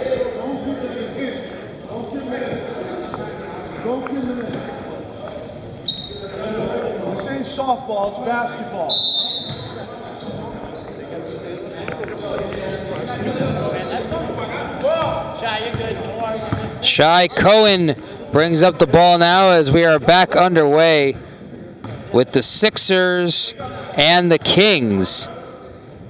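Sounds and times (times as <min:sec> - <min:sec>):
voices echoing in gymnasium: 0:00.0 - 0:26.0.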